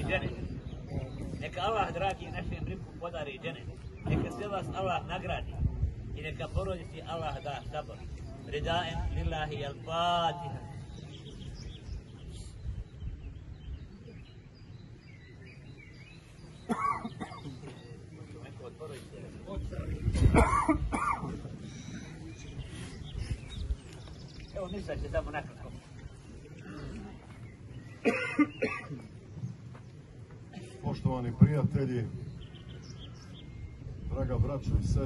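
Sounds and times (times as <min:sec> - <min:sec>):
small birds chirping: 0:00.0 - 0:35.0
man coughing and clearing throat: 0:16.6 - 0:17.8, 0:20.1 - 0:21.5, 0:28.0 - 0:29.1.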